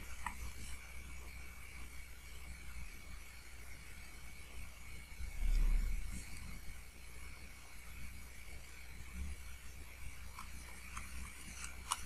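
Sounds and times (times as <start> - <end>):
faint high whine: 0.0 - 12.0
low electrical hum: 0.0 - 12.0
steady hiss: 0.0 - 12.0.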